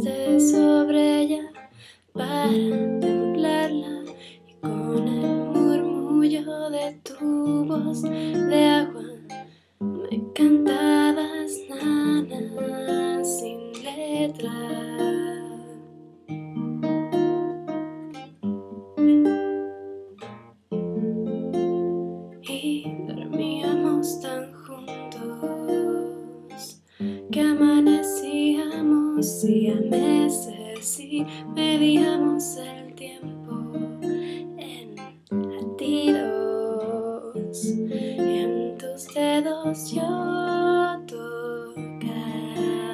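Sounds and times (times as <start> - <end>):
acoustic guitar strumming: 0.0 - 42.9.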